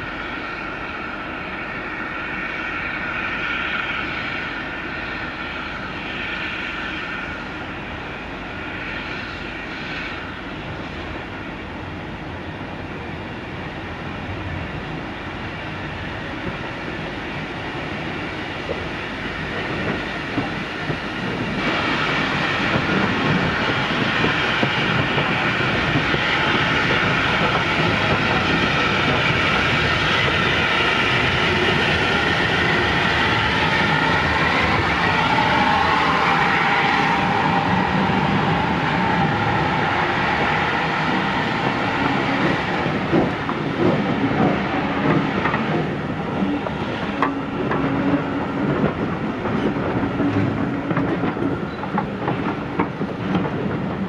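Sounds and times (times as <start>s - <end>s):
train wheel squeal: 0.0s - 11.6s, 14.8s - 54.0s
steam locomotives passing: 0.0s - 54.0s
clickety-clack of train wheels: 13.0s - 54.0s.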